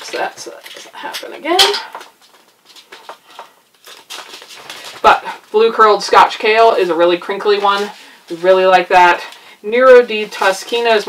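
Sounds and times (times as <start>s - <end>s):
paper packet rustling: 2.1s - 5.2s.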